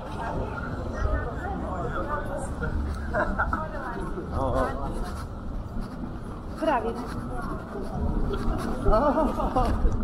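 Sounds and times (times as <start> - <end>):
low rumble of street noise: 0.0 - 10.0
passers-by talking: 0.0 - 10.0.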